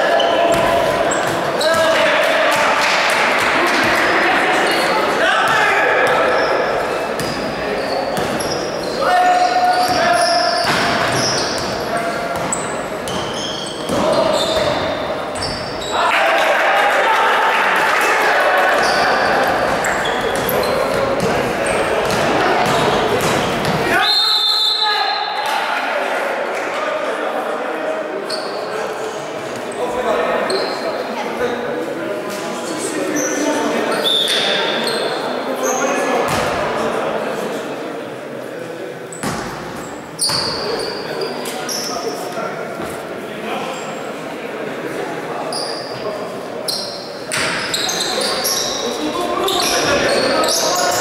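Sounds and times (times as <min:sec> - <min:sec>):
players calling out: 0:00.0 - 0:26.0
echoing indistinct voices: 0:00.0 - 0:51.0
shoe squeaks: 0:06.1 - 0:16.0, 0:18.8 - 0:21.0, 0:28.3 - 0:28.7, 0:30.4 - 0:30.9, 0:32.6 - 0:36.0, 0:39.9 - 0:42.2, 0:45.5 - 0:46.0, 0:46.7 - 0:51.0.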